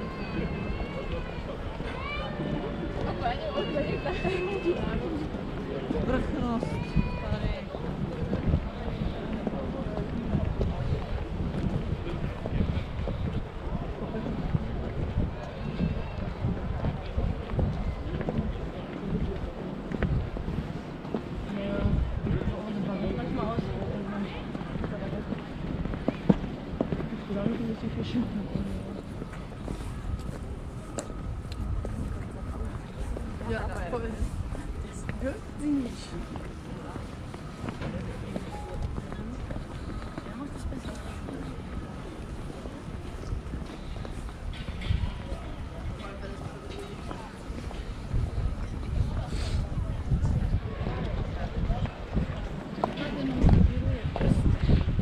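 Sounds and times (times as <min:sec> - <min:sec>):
people talking: 0:00.0 - 0:19.7, 0:31.9 - 0:44.1, 0:44.8 - 0:55.0
wind buffeting microphone: 0:00.0 - 0:55.0.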